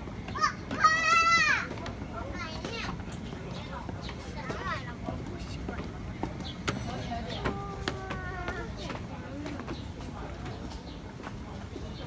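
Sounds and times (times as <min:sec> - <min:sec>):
faint crowd chatter: 0:00.0 - 0:12.0
child shouting: 0:00.3 - 0:01.8.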